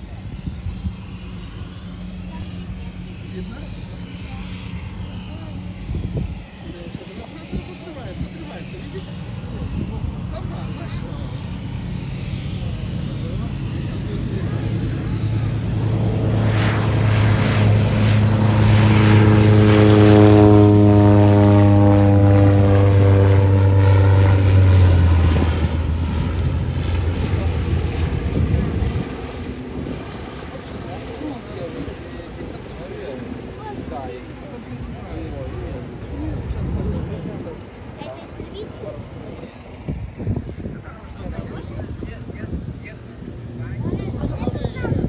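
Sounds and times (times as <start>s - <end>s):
propeller plane engine passing: 0.0s - 45.0s.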